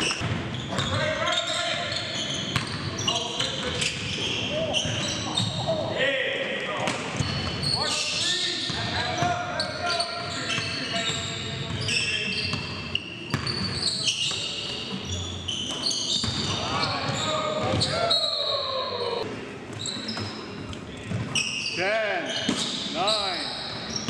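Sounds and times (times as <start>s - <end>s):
sneaker squeaks: 0.0s - 5.9s, 6.8s - 19.0s, 19.7s - 24.0s.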